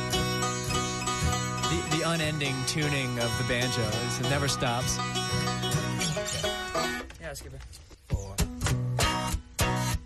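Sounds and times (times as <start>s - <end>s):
banjo strings ringing: 0.0s - 7.2s.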